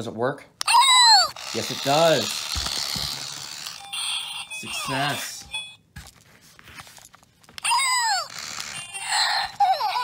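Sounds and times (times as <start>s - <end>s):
electronic toy squeaks: 0.7s - 5.8s.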